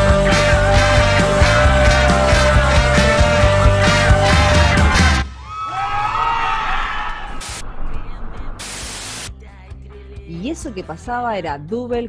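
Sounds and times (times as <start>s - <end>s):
live rock band playing: 0.0s - 5.2s
audience whooping and cheering: 1.7s - 7.6s
short bursts of hiss: 8.6s - 9.3s.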